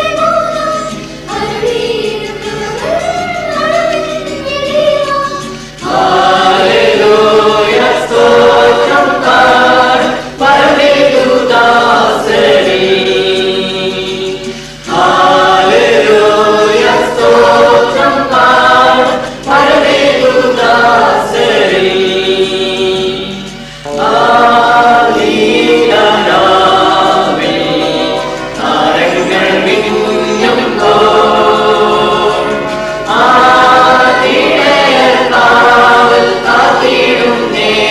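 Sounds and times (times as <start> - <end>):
choir singing a carol: 0.0 - 37.9.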